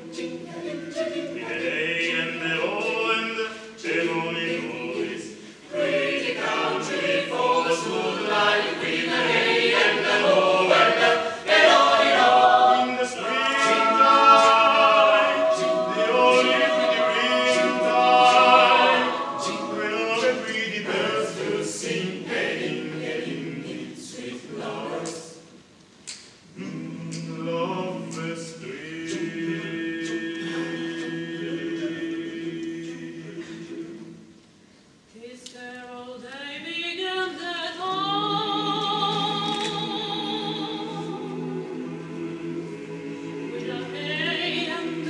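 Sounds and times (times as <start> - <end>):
choir singing a cappella: 0.0 - 25.6, 26.5 - 34.4, 36.6 - 45.0.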